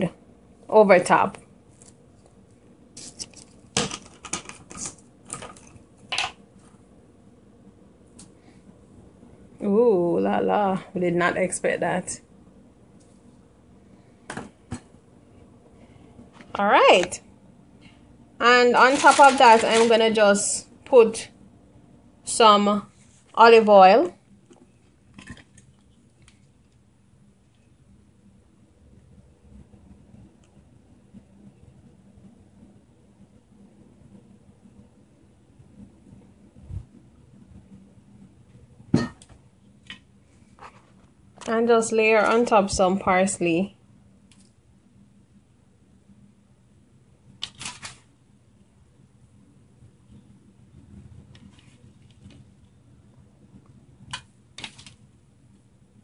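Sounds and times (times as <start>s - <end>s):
food handled on foil: 3.0s - 6.7s, 18.6s - 20.2s, 47.4s - 48.1s
kitchen items knocking: 18.8s - 20.0s.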